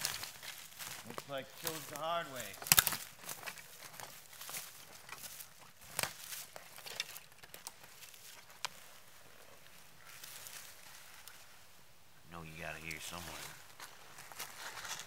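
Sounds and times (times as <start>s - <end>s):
footsteps in dry leaves: 0.0s - 11.8s, 12.6s - 15.0s.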